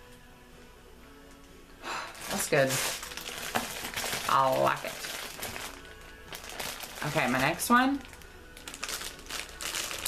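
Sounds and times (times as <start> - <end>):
faint background music: 0.0 - 10.0
plastic bag crinkling: 2.2 - 10.0.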